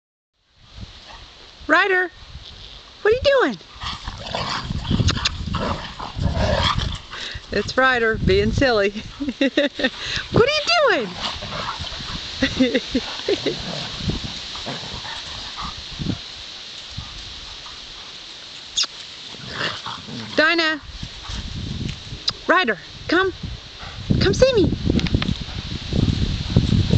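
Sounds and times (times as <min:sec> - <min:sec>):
dogs play-fighting: 0:03.7 - 0:07.4, 0:11.0 - 0:16.2.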